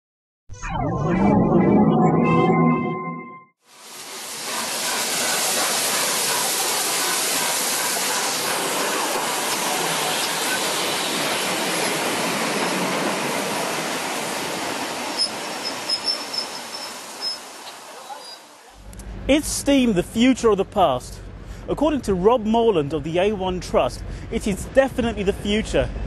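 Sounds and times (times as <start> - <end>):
steam locomotive hissing: 3.7 - 18.6.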